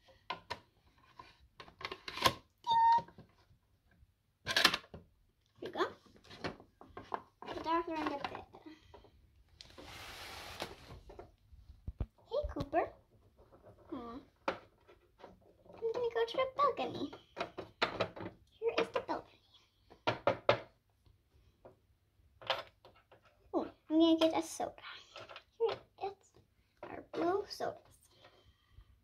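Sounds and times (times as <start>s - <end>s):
child calling sing-song: 2.7s - 3.1s.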